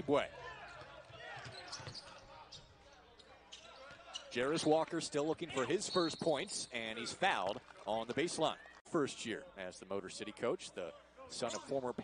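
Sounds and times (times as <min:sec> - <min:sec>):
faint shoe squeaks: 0:01.4 - 0:04.4.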